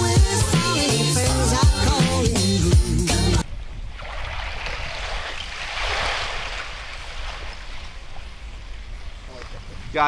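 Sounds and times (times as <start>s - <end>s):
waves lapping against ice and rocks: 3.7s - 10.0s.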